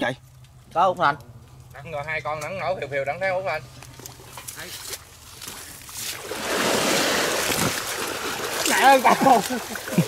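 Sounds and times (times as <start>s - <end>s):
water splashing and churning: 3.9s - 10.0s.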